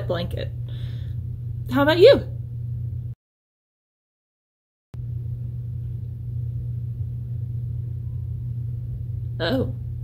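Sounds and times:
steady low hum: 0.0 - 3.2, 5.0 - 10.0.

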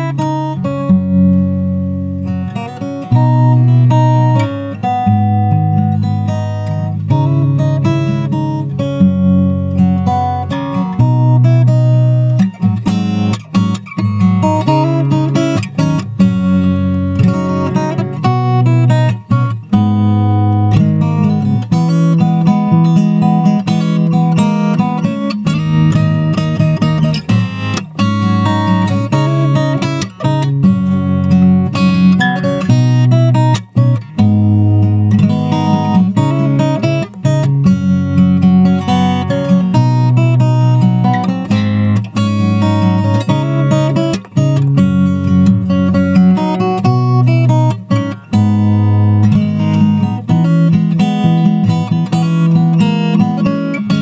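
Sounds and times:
fingerstyle acoustic guitar: 0.0 - 54.0.

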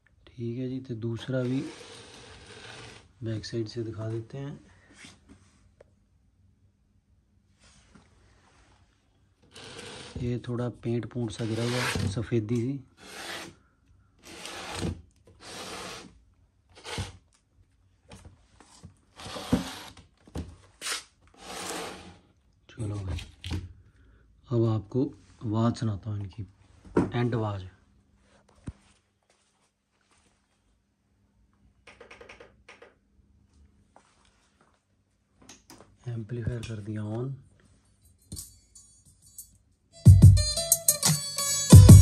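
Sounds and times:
hand rubbing wooden surface: 1.2 - 3.0, 9.5 - 10.2, 11.3 - 12.0, 21.4 - 22.2.

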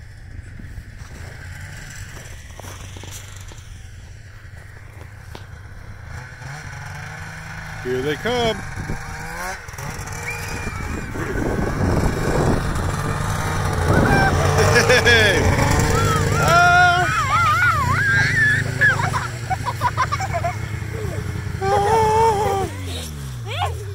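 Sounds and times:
snowmobile engine running: 0.0 - 23.9
children shrieking and shouting: 10.0 - 12.2, 12.8 - 23.9.

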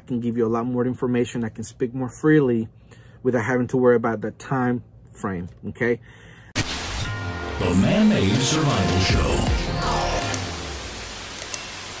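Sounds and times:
music jingle: 6.6 - 11.8
steady hiss: 10.0 - 12.0.

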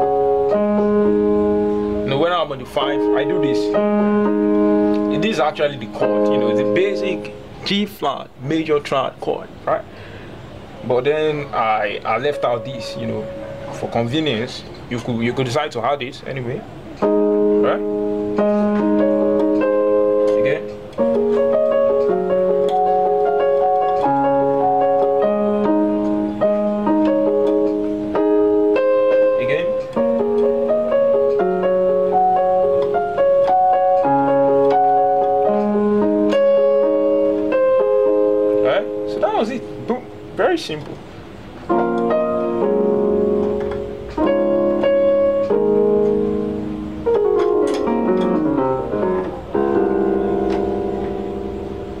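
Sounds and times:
electronic keyboard piano arpeggios: 0.0 - 52.0.

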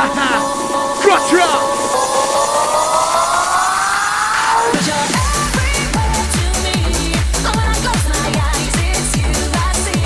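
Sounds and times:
synth riser gliding upward: 0.3 - 4.8.

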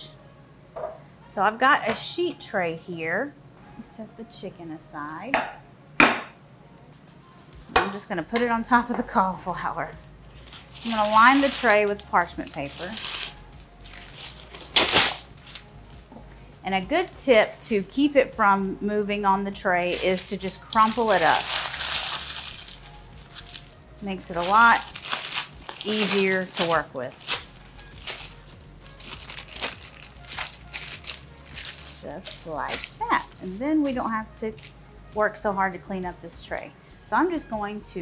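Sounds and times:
paper rustling: 10.4 - 15.6, 24.4 - 33.6.

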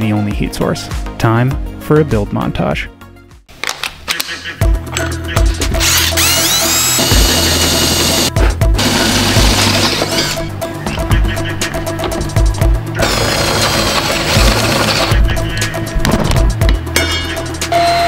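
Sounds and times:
background music with steady beat: 0.0 - 18.0
cordless drill boring through metal: 5.8 - 10.4, 13.0 - 15.2.

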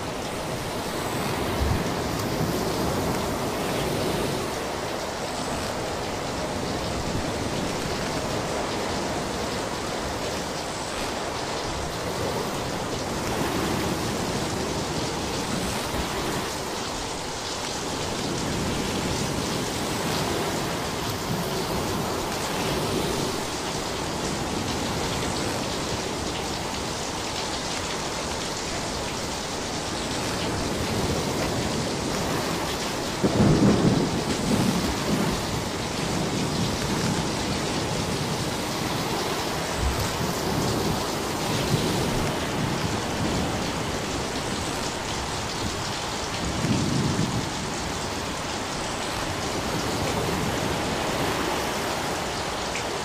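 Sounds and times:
rushing water: 0.0 - 53.0.

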